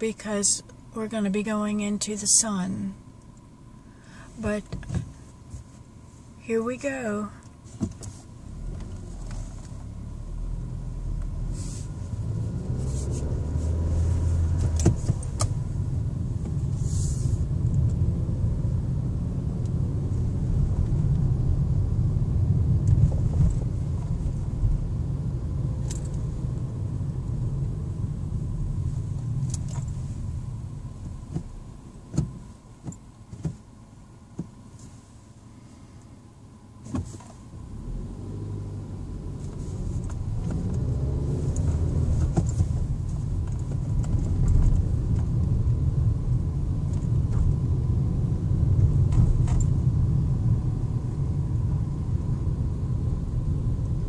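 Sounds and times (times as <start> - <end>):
car road and engine rumble: 0.0 - 54.0.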